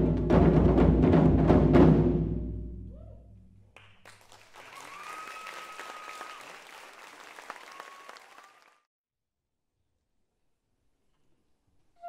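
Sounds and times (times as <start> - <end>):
audience applauding: 3.8 - 8.9.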